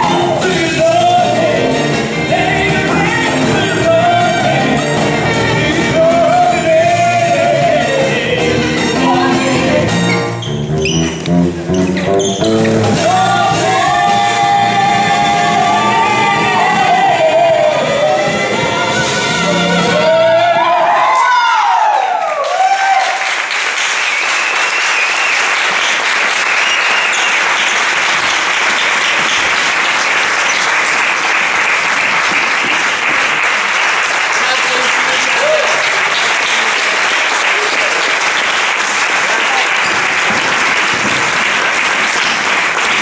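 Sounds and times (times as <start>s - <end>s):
audience applauding: 21.8s - 43.0s.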